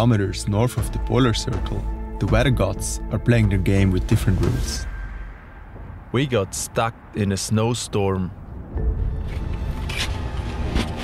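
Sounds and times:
steady low rumble: 1.0 - 10.7.

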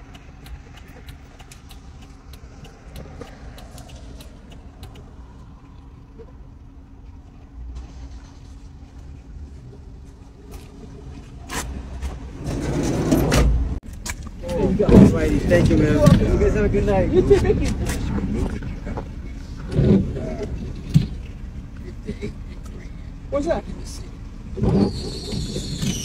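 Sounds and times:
vehicle engine idling: 0.0 - 12.7, 13.4 - 26.0
street traffic: 0.0 - 26.0.

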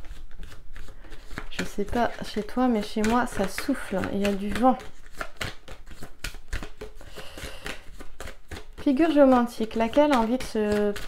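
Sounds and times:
cards being shuffled: 0.0 - 11.0.

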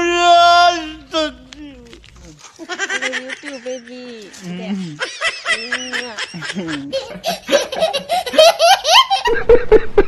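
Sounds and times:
laughter: 2.6 - 10.0.

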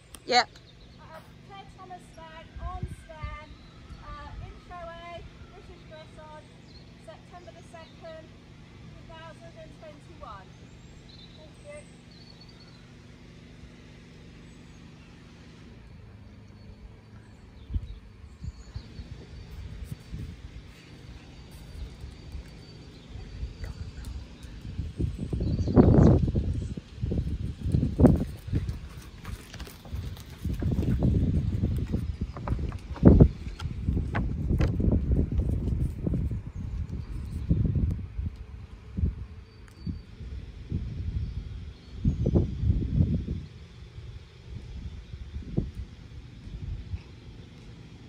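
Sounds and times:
low background hum: 0.0 - 48.0
horse hooves thudding: 24.0 - 37.4.

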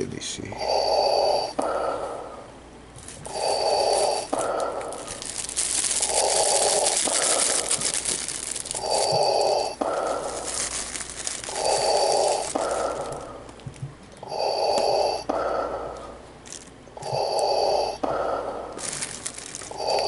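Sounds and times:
heavy breathing through face mask: 0.6 - 2.6, 3.2 - 13.6, 14.2 - 16.2, 17.0 - 20.0.

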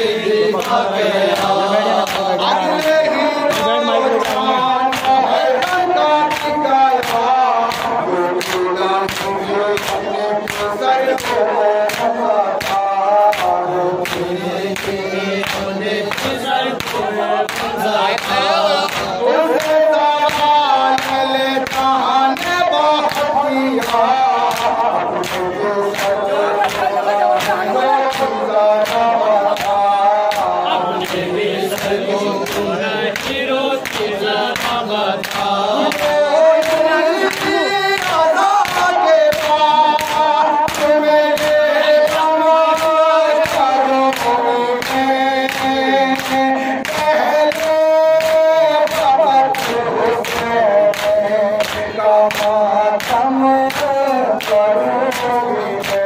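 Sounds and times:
hands striking chests rhythmically: 0.0 - 56.0
man reciting into a microphone: 0.0 - 56.0
men chanting in chorus: 0.0 - 56.0.

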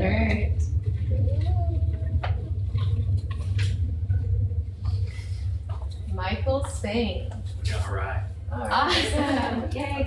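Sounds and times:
low room hum: 0.0 - 10.0
faint voice murmuring: 1.0 - 3.0.

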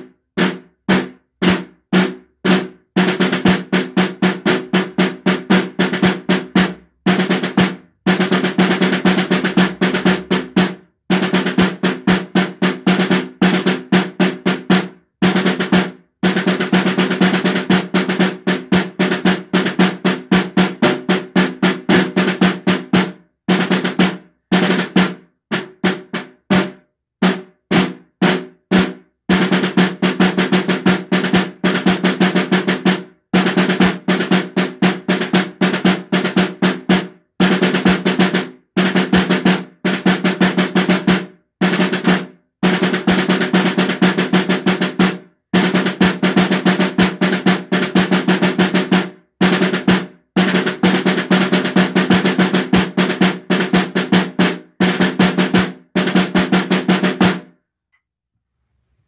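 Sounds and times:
snare drum rolls: 0.0 - 57.5.

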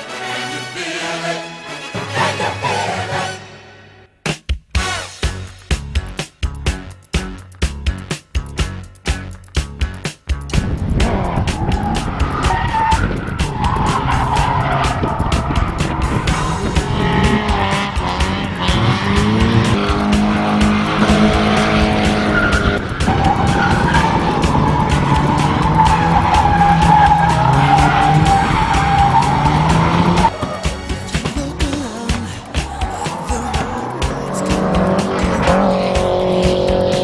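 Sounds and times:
car engine at high revs: 10.6 - 31.4, 32.1 - 37.0
tyre squeal: 11.5 - 16.6, 22.1 - 30.8.

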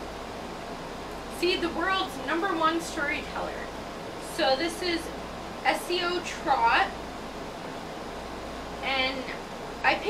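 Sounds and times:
room noise hiss: 0.0 - 10.0
woman's voice: 1.3 - 7.0, 8.8 - 10.0.

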